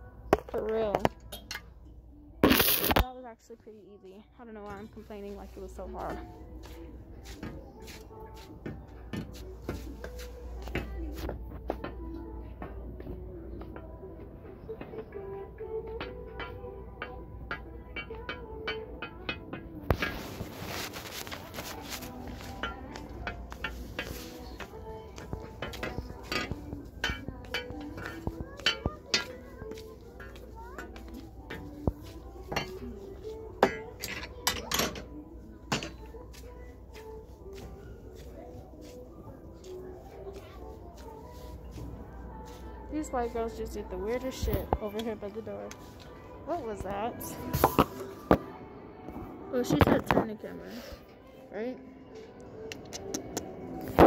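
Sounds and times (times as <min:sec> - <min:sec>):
background music: 0:00.0 - 0:54.0
metal hangers clinking: 0:02.4 - 0:03.1, 0:15.2 - 0:37.4
rustling clatter: 0:19.9 - 0:29.4.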